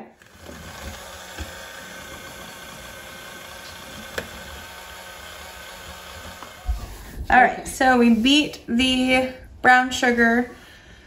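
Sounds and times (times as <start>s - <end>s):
electric stand mixer running: 0.0s - 7.2s.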